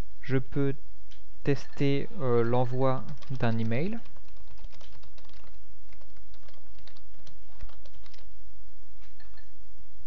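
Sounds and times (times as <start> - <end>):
steady low hum: 0.0 - 10.0
typing on computer keyboard: 3.0 - 8.3.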